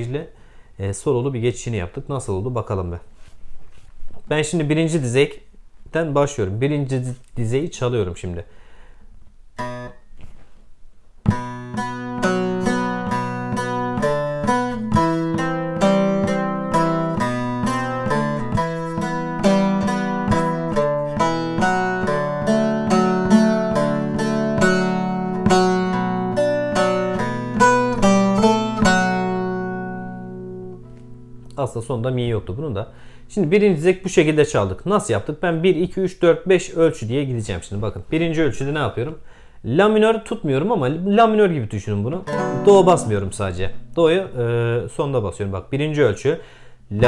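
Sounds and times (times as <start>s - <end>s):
plucked saz folk melody: 11.3s - 31.6s, 32.4s - 33.4s, 42.2s - 44.8s.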